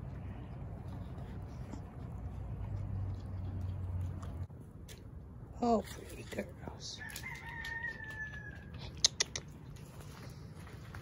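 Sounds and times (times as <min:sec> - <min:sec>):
rooster crowing: 0:07.0 - 0:08.8.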